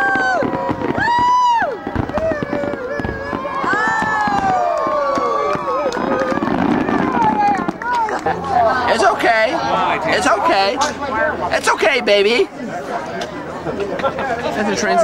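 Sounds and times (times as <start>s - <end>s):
fireworks whistling: 0.0s - 7.9s
fireworks crackling and popping: 0.0s - 9.5s.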